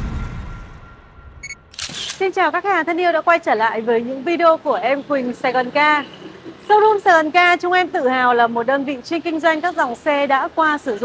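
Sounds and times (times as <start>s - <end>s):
low boom: 0.0s - 1.7s
short high electronic beep: 0.0s - 1.9s
sharp click-like burst: 1.4s - 2.3s.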